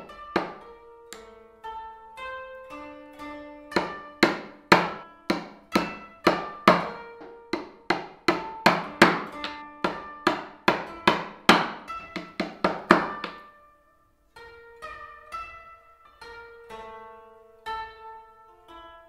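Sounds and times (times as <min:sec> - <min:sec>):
hammer striking chisel: 0:00.0 - 0:00.6, 0:03.8 - 0:13.4
plucked-string music: 0:00.0 - 0:19.0.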